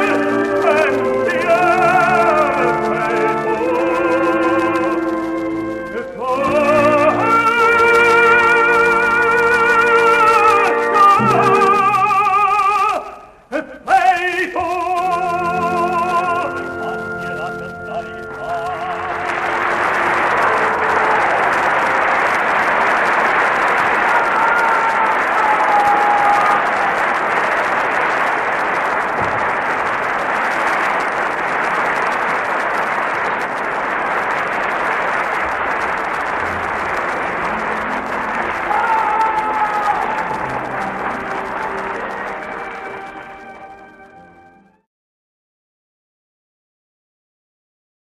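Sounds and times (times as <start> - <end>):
audience applauding: 0.0 - 44.8
people calling out: 23.9 - 27.1, 37.7 - 42.7.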